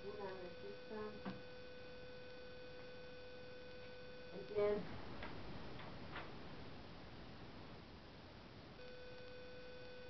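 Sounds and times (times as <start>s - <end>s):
steady electronic tone: 0.0s - 4.8s, 8.8s - 10.0s.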